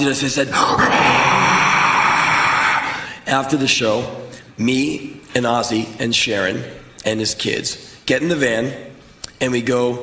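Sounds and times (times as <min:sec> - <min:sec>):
man roaring raspily: 0:00.5 - 0:03.2.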